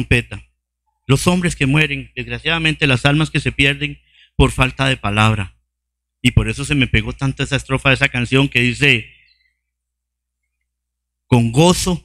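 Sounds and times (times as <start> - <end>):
man's voice with echo: 1.1 - 5.6, 6.2 - 9.3, 11.3 - 12.0.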